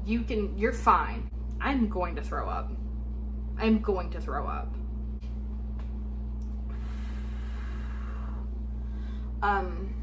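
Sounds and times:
low hum with fixed tones: 0.0s - 10.0s.

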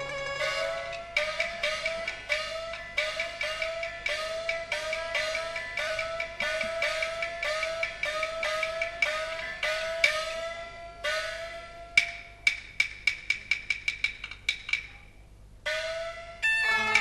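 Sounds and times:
sharp percussion clicks: 12.0s - 15.0s.

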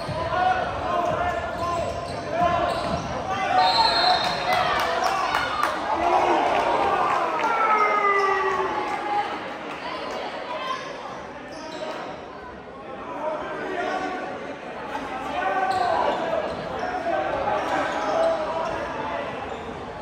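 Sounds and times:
spectators talking in echoing gym: 0.0s - 20.0s.

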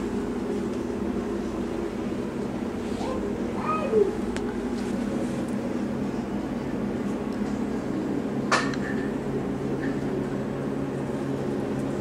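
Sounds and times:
low indoor hum: 0.0s - 12.0s.

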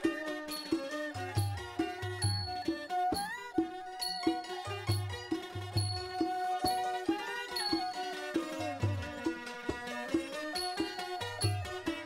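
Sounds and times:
bowed fiddles melody: 0.0s - 12.0s
hand drum beat: 0.0s - 12.0s
small cymbals striking: 0.0s - 12.0s
zithers: 0.0s - 12.0s.

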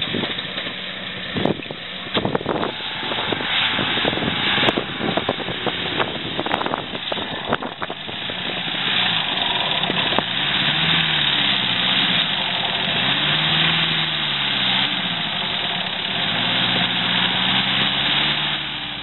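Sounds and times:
pickup truck engine revving: 0.0s - 19.0s
steady rushing hiss: 0.3s - 19.0s.

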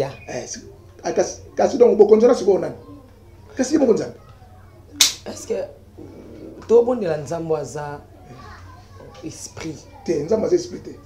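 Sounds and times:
low room noise: 0.0s - 11.0s.

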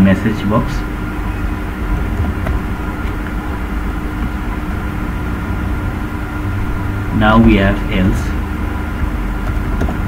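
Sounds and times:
faint constant hum: 0.0s - 10.0s
low rumbling background noise: 0.0s - 10.0s.

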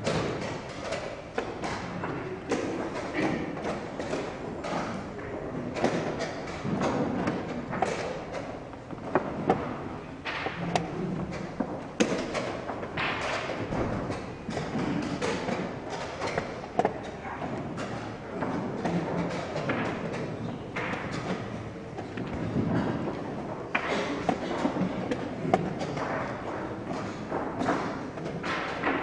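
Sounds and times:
chess pieces knocking on board: 0.0s - 29.0s
room noise: 0.0s - 29.0s.

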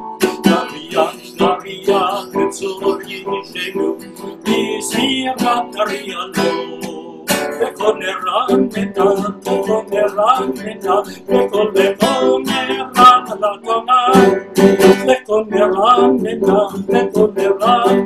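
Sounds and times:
electronic keyboard: 0.0s - 18.0s
strummed acoustic guitar: 0.0s - 18.0s
man singing: 0.2s - 18.0s.

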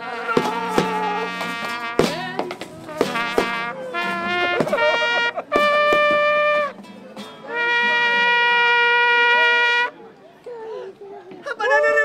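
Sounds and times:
horn playing held notes: 0.0s - 2.2s, 2.8s - 6.8s, 7.5s - 9.9s.

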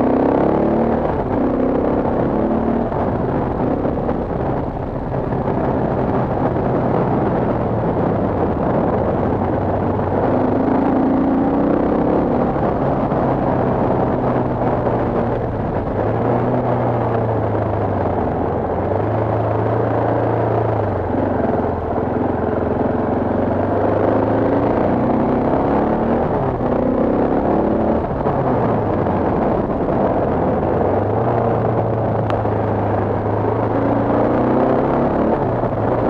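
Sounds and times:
motorcycle engine revving: 0.0s - 36.0s
wind and road noise: 0.0s - 36.0s.

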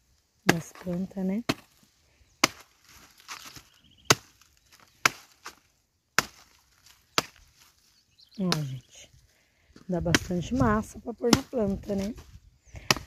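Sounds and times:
blade chopping plant trunk: 0.5s - 1.8s, 2.4s - 7.7s, 8.4s - 8.9s, 10.0s - 12.2s, 12.8s - 13.0s.

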